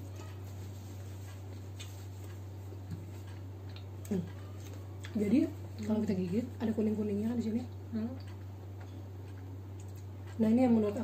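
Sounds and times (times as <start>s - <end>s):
low electrical hum: 0.0s - 11.0s
person chewing pizza: 0.1s - 6.0s, 7.8s - 10.4s.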